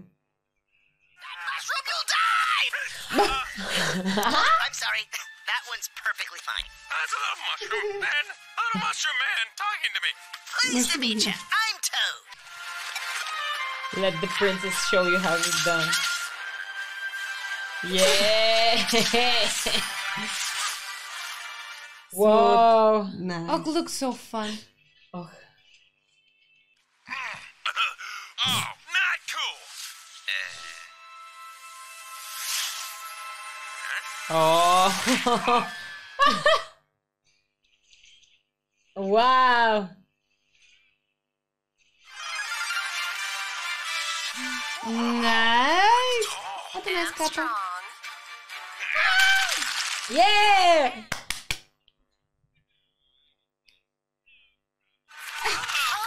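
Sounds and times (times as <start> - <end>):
man groaning and grunting: 27.1 - 28.8
sharp smacks: 51.1 - 51.7.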